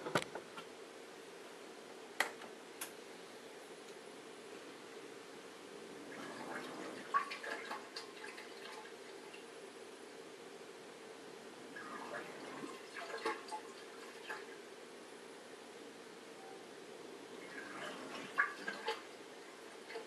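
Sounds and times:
faint steady hum: 0.0 - 20.0
dishwasher drain pump gurgling: 6.0 - 9.4, 11.7 - 14.6, 17.3 - 20.0.

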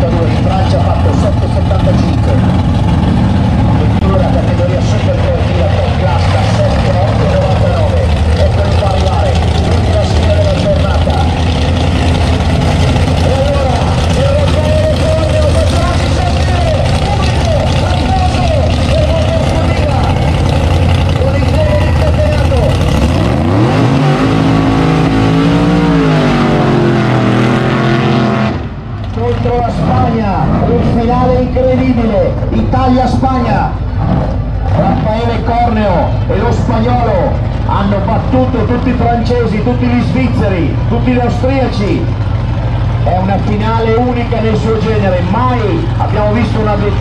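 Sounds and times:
drag racing engines rumbling: 0.0 - 47.0
engine revving up: 1.2 - 31.4.

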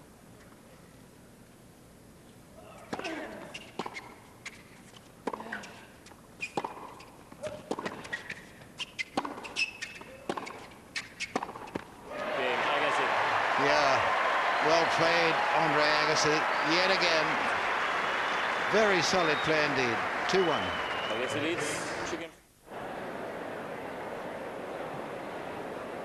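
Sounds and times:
tennis ball bounces: 6.4 - 11.9
crowd cheering and applause: 12.1 - 22.1.

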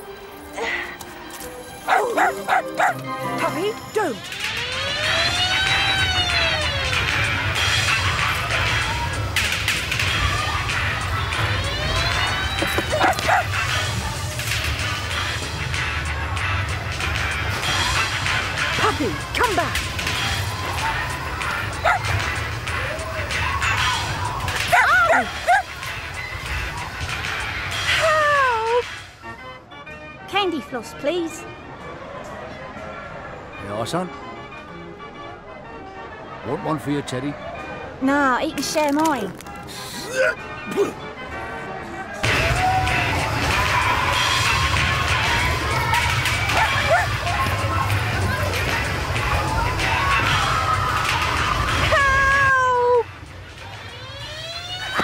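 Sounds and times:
background music: 0.0 - 55.0
cartoon puppy barking: 1.9 - 3.0, 12.8 - 13.6, 21.8 - 22.1, 24.6 - 25.7, 46.0 - 47.3
cartoon puppy yapping: 21.8 - 22.1, 24.7 - 25.7.

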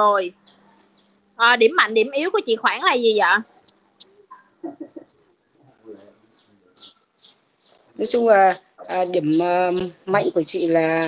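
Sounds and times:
faint high chirps: 3.5 - 9.4
bird cooing: 4.3 - 6.1.

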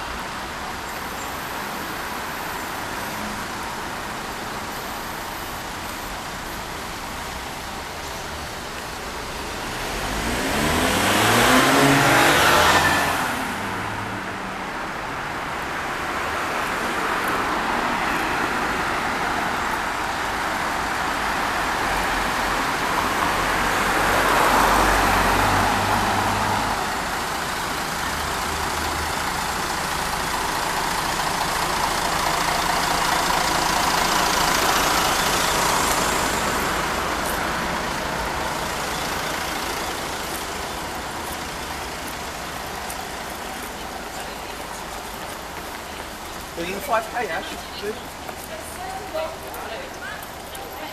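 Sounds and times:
passing road traffic: 0.0 - 50.9.

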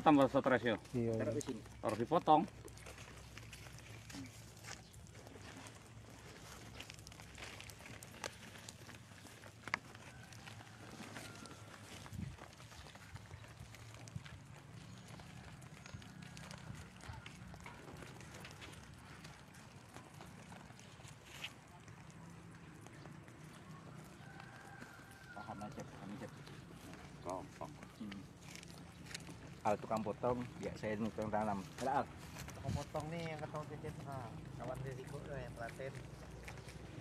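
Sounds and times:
soil rustling in plastic bags: 0.0 - 37.0.

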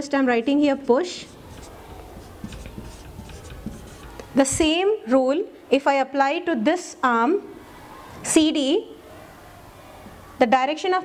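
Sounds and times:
marker writing on whiteboard: 1.2 - 4.7.

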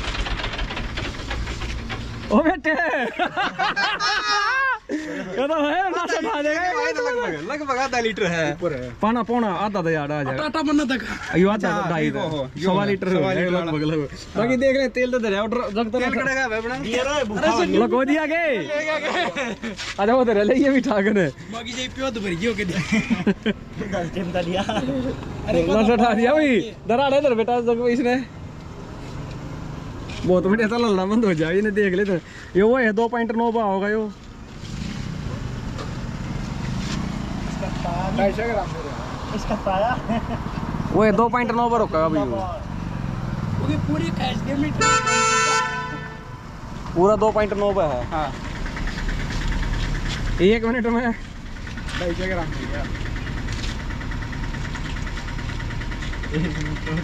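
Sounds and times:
tractor diesel engine running: 0.0 - 3.6, 35.4 - 57.0.

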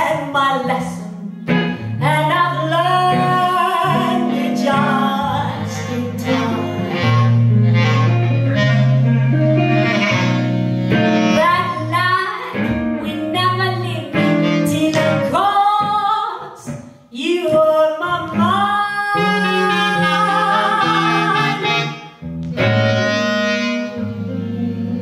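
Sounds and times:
woman singing blues: 0.0 - 10.1, 10.9 - 21.9
clarinet: 0.0 - 15.6, 17.4 - 25.0
electric guitar: 0.0 - 25.0.

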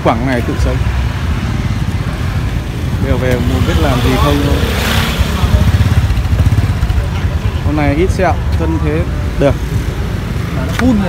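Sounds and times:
motorbike engine rumbling: 0.0 - 11.0.

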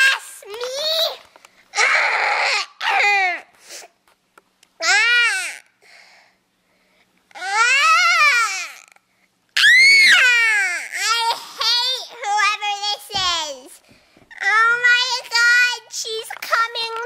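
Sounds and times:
girl wailing: 1.8 - 3.4, 7.4 - 8.9, 9.6 - 11.3.

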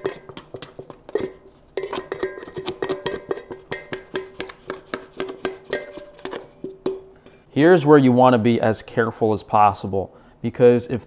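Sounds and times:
scraper scraping metal bowl: 0.0 - 6.8
metal bowl ringing: 1.1 - 7.2.

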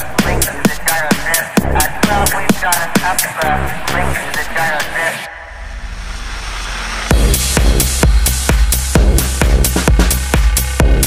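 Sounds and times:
electronic dance music: 0.0 - 11.0
hissing noise riser: 5.3 - 8.9.

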